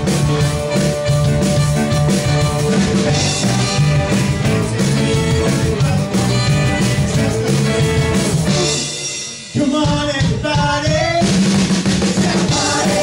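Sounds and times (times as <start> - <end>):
drum kit: 0.0 - 13.0
rock and roll music: 0.0 - 13.0.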